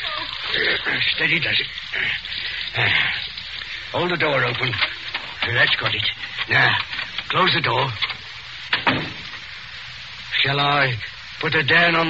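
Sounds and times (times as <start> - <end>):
old radio recording hiss: 0.0 - 12.0
door shutting: 8.0 - 9.4.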